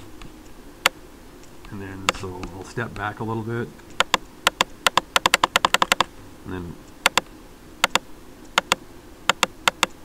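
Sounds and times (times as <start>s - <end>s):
computer mouse button clicks: 3.9s - 6.1s, 7.1s - 8.0s, 8.6s - 10.0s.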